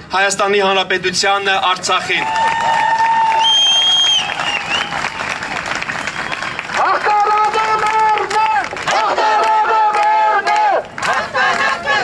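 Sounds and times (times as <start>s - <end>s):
crowd applauding: 2.1s - 12.0s
shrill whistle: 3.4s - 5.1s
crowd shouting in unison: 8.4s - 12.0s.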